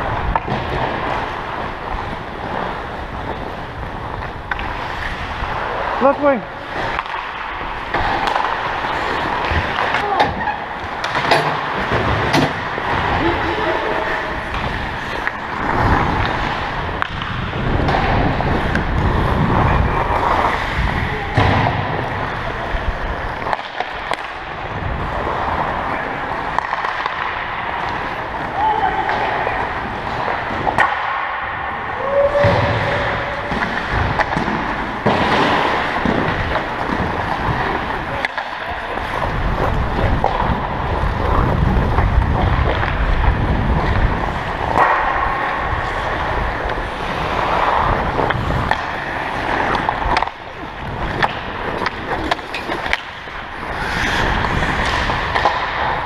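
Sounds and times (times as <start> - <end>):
skates scraping on ice: 0.0 - 56.0
hockey sticks and puck knocking: 0.1 - 2.7, 3.3 - 13.7, 14.4 - 40.8, 42.0 - 56.0
voices: 13.0 - 15.4, 28.1 - 30.5.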